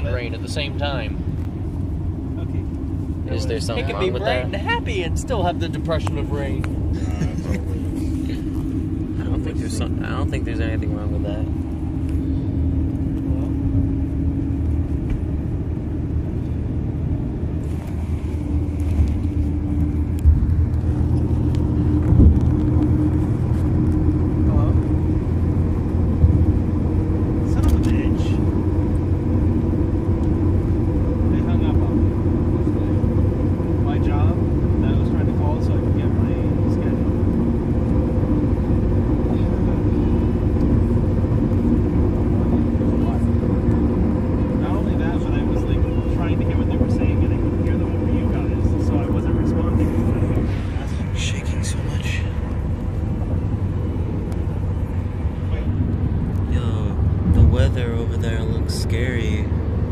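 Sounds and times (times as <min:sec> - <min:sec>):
car engine and tyre drone: 0:00.0 - 0:59.9.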